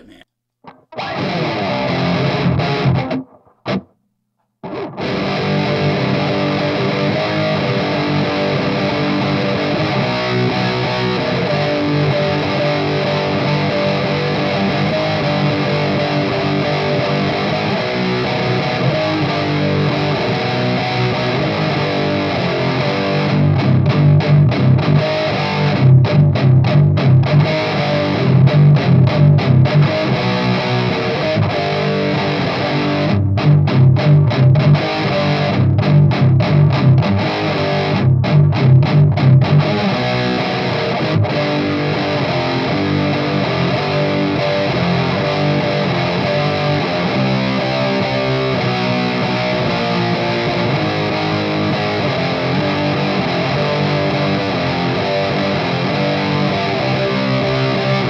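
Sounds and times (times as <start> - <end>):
distorted electric guitar riffs: 0.0 - 4.0, 4.6 - 58.0.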